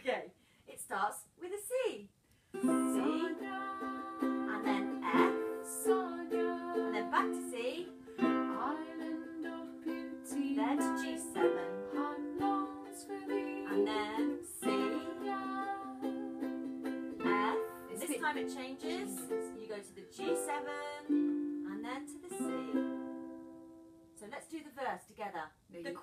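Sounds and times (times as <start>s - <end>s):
ukulele strumming: 2.6s - 24.0s.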